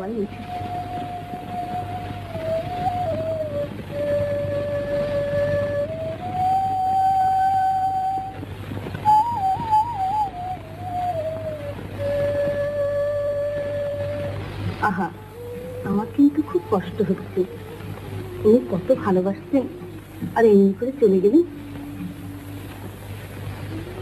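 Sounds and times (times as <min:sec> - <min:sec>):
solo flute melody: 0:00.0 - 0:24.0
steady low hum: 0:00.0 - 0:24.0.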